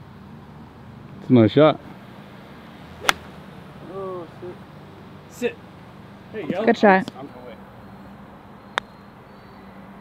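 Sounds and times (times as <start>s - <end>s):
golf club striking ball: 3.0s - 3.5s.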